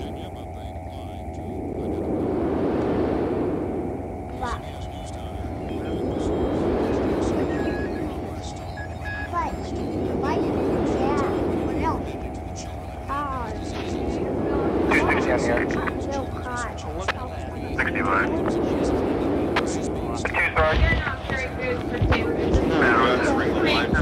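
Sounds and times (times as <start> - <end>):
low droning rumble: 0.0 - 24.0.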